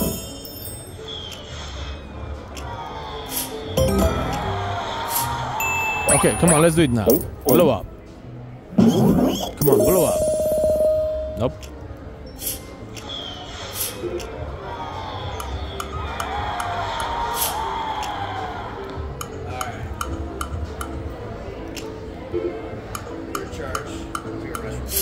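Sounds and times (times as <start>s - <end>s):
slot machine electronic tones: 3.8s - 4.6s, 5.7s - 7.4s, 9.6s - 11.6s
casino background noise: 3.8s - 13.1s, 19.0s - 25.0s
slot reel clicks and chimes: 9.6s - 11.7s.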